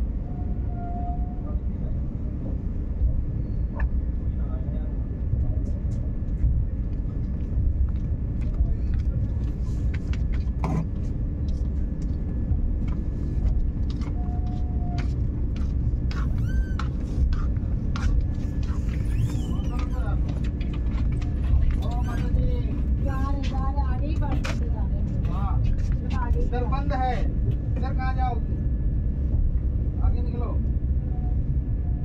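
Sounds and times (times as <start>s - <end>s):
train rumbling: 0.0s - 32.0s.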